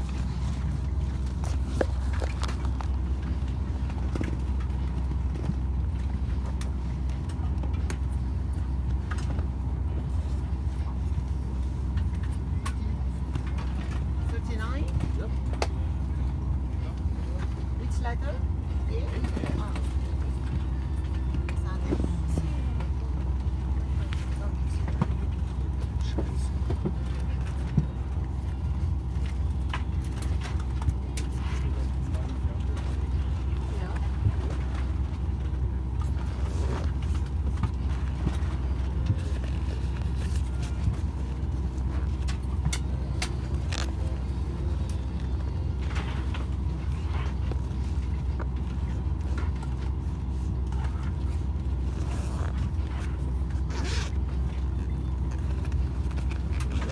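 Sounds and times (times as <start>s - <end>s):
airliner cabin air system drone: 0.0s - 56.9s
murmur of passenger voices: 0.0s - 56.9s.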